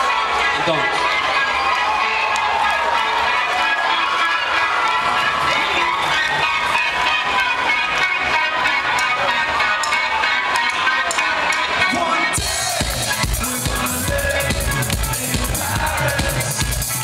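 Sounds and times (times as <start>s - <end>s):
crowd cheering and singing: 0.0s - 17.0s
live band playing: 0.0s - 17.0s.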